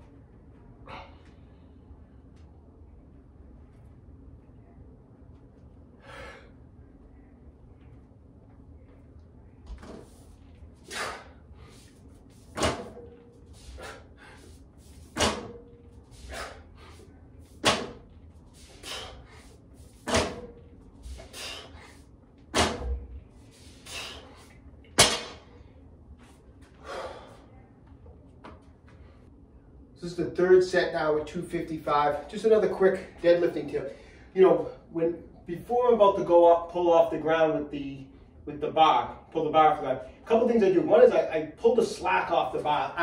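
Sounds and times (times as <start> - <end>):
sharp forceful breaths: 10.8 - 15.4, 16.0 - 20.4, 21.0 - 22.1, 23.4 - 24.6, 26.8 - 27.5.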